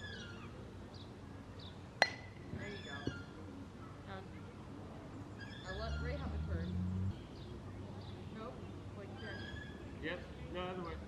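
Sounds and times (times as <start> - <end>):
metal bat hitting softball: 2.0 - 2.4.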